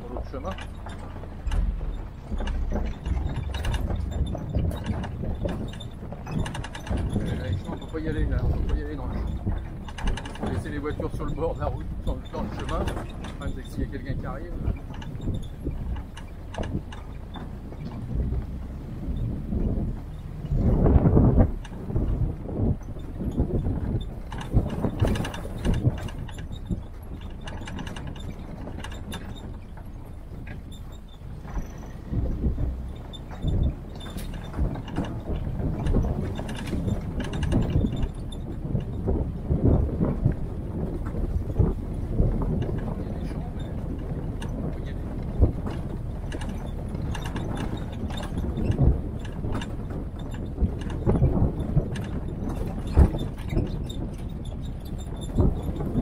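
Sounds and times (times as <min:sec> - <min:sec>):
engine and chassis rumble: 0:00.0 - 0:56.0
vehicle body rattling: 0:00.0 - 0:56.0
vehicle jolt: 0:00.0 - 0:56.0.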